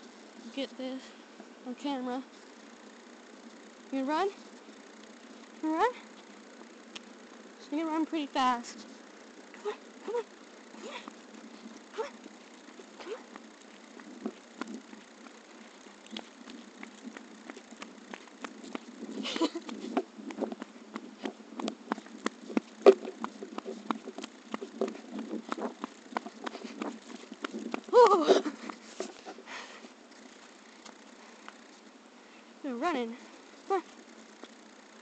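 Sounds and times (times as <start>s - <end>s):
running footsteps on asphalt: 4.3s - 31.9s.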